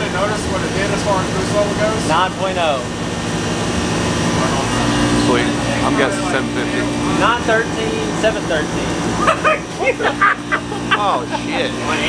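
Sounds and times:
mechanical running noise: 0:00.0 - 0:12.0
low hum: 0:02.7 - 0:12.0.

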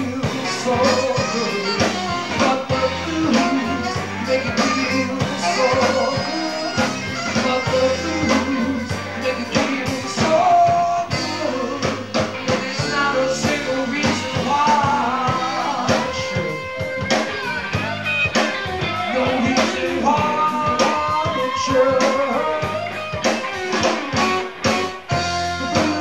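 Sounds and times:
blues band playing: 0:00.0 - 0:26.0
electric guitar: 0:00.0 - 0:26.0.

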